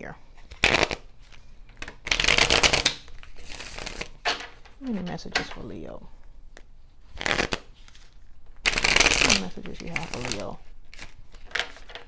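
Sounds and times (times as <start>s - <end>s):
cards being shuffled: 0.4s - 5.5s, 6.5s - 12.0s.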